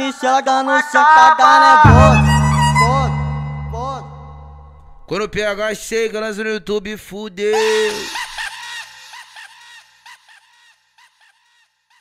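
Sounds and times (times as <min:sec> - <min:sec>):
low bass note: 0:01.8 - 0:05.1.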